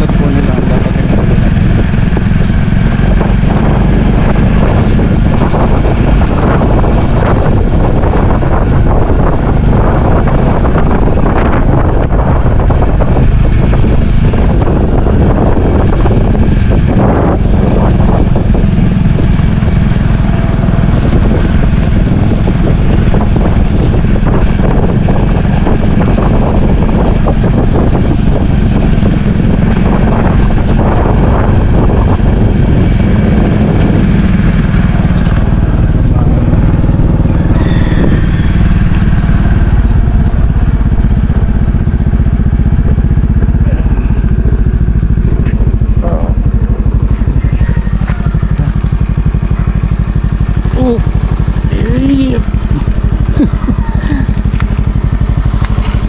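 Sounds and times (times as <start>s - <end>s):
motorcycle engine running: 0.0s - 56.0s
wind rushing over microphone: 0.0s - 56.0s.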